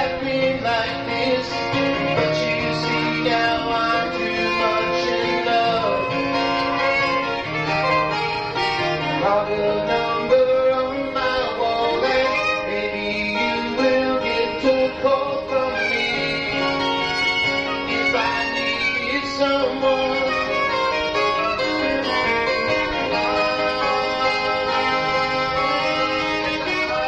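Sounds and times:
live band playing: 0.0s - 27.0s
saxophone lead line: 0.9s - 27.0s.

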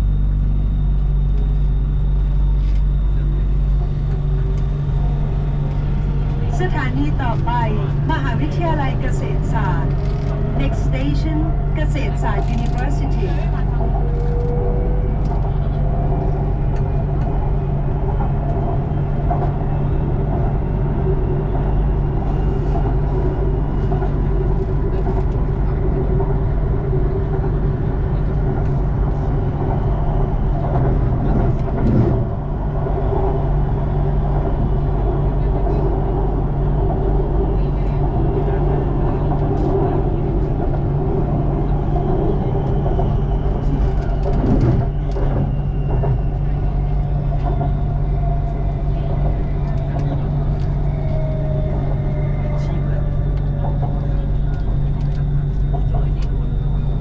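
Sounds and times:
faint whine gliding lower: 0.0s - 57.0s
train car rumble and hum: 0.0s - 57.0s.

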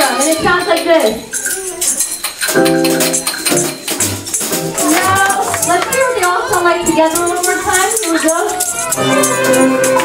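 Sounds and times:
jingling hand percussion: 0.0s - 10.0s.

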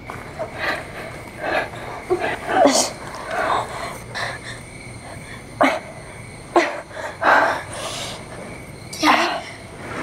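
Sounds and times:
woman whimpering and sobbing: 0.4s - 8.3s.

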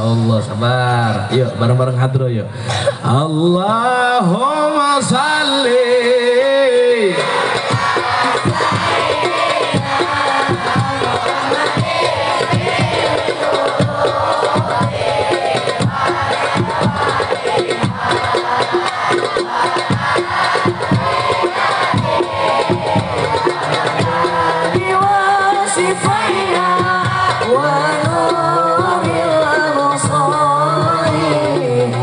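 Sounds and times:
crowd singing: 3.0s - 32.0s
frame drums beating fast rhythm: 5.1s - 32.0s.

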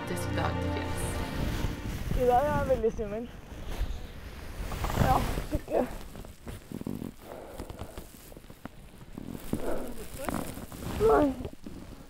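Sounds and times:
clothing rustling: 0.8s - 12.0s.

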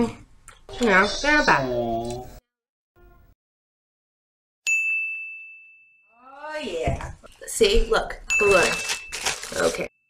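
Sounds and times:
bright bell ding: 4.7s - 6.2s.

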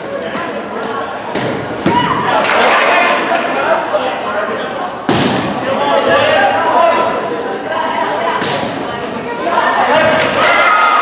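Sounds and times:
sneakers squeaking on floor: 0.0s - 4.3s, 5.0s - 6.6s, 7.2s - 10.3s
people shouting and cheering: 1.7s - 4.0s, 9.2s - 11.0s.

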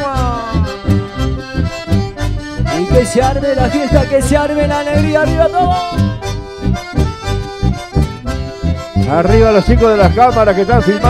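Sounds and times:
accordions playing chords and melody: 0.0s - 11.0s
bass guitar beat: 0.0s - 11.0s.

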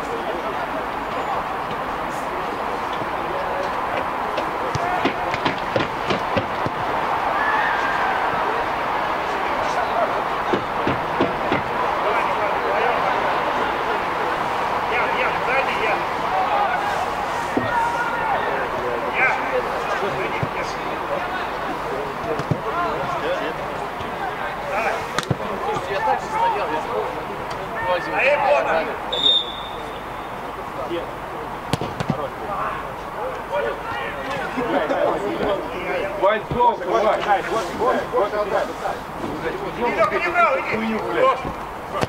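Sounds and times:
players shouting and chatter: 0.0s - 42.0s
sharp knocks: 4.7s - 6.9s, 10.5s - 11.8s.

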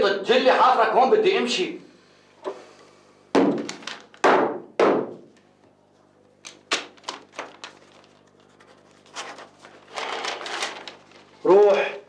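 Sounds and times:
loud echoing thuds: 3.4s - 5.3s.

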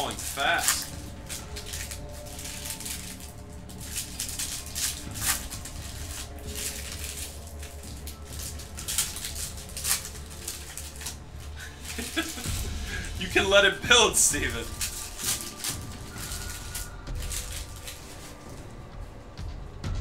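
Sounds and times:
trading cards being shuffled: 0.0s - 18.7s
foil wrapper rustling: 0.0s - 19.3s
faint background music: 0.0s - 20.0s.

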